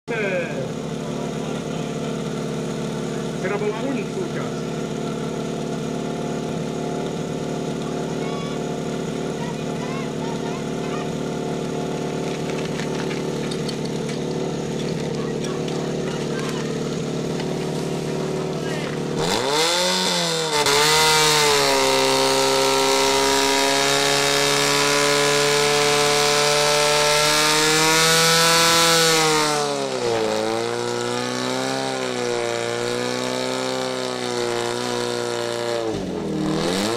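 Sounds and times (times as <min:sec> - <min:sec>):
pump engine idling and revving: 0:00.0 - 0:36.9.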